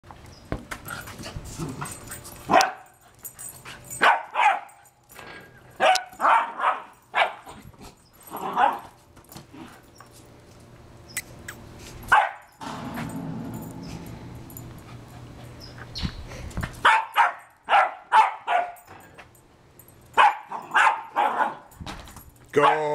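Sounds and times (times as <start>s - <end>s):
small dog barking: 2.5s - 2.9s, 4.0s - 4.7s, 5.8s - 7.5s, 12.1s - 12.5s, 16.8s - 18.8s, 20.2s - 21.7s, 22.6s - 22.9s.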